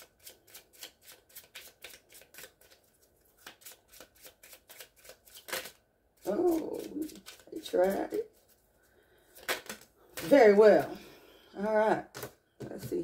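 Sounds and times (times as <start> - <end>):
cards being shuffled: 0.1 - 8.6, 9.4 - 10.9.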